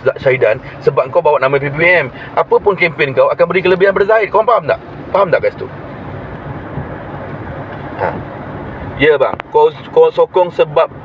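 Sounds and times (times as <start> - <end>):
car interior hum: 0.0 - 11.0.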